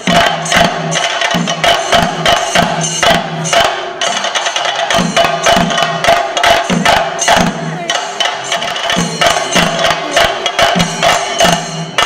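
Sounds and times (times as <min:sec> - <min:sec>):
drums beaten fast with sticks: 0:00.0 - 0:12.0
ringing cymbals: 0:00.0 - 0:12.0.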